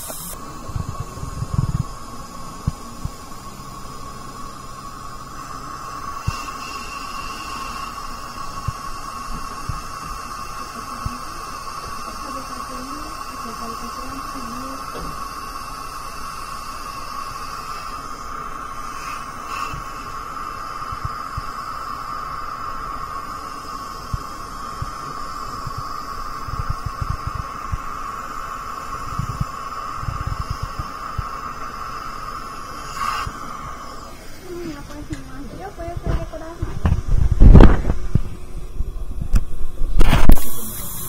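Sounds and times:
dental suction whirring: 0.0s - 38.3s, 39.9s - 41.0s.

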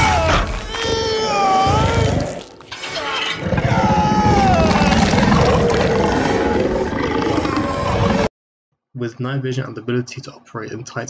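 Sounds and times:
dramatic film soundtrack: 0.0s - 7.1s.

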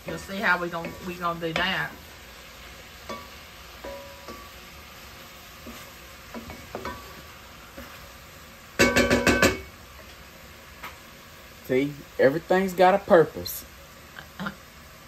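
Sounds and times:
wooden spoon stirring: 0.0s - 2.1s
food sizzling in a pot: 0.0s - 15.0s.

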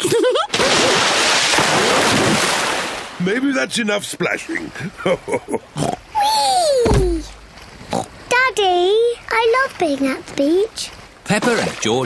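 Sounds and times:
low thump: 6.8s - 7.5s.

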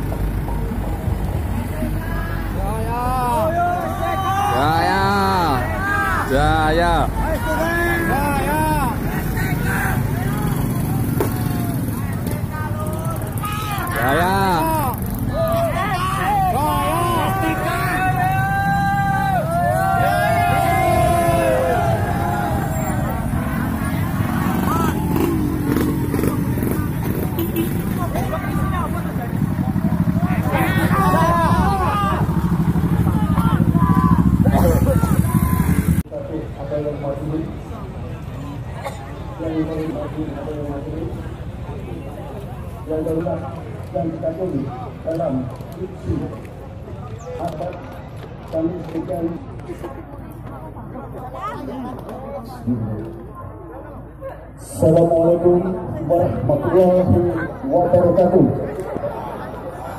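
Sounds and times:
truck engines rumbling: 0.0s - 59.9s
people shouting: 2.1s - 10.9s, 12.8s - 25.5s, 29.8s - 36.0s.

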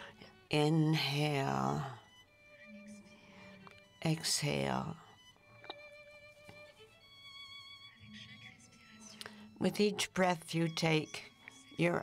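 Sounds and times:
violin long held notes: 0.0s - 12.0s.

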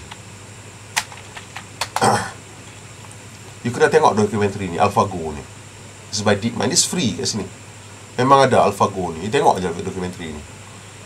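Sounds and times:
computer keys clicking: 1.0s - 2.1s.

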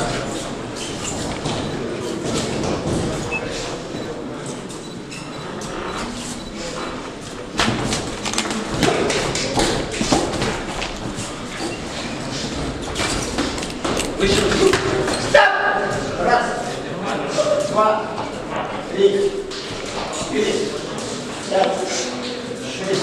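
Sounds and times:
footwork on ring canvas: 6.0s - 23.0s.

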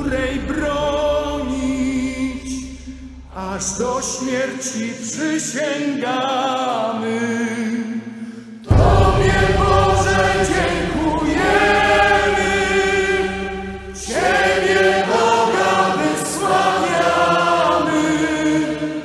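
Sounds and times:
choir singing held chords: 0.0s - 4.8s, 8.6s - 19.0s.

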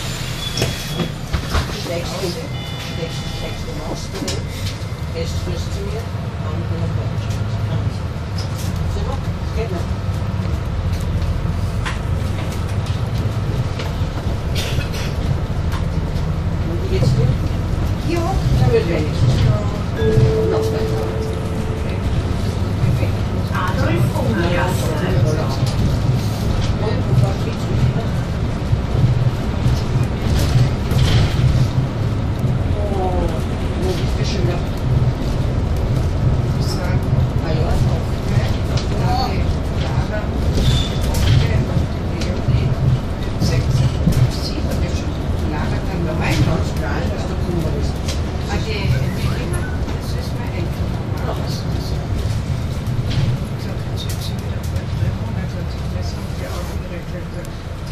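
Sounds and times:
bus clicks and rattles: 0.0s - 2.5s, 3.6s - 57.9s
bus engine drone: 0.0s - 57.9s.

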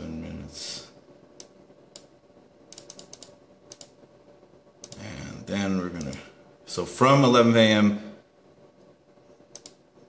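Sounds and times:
computer mouse button clicking: 9.5s - 9.8s.

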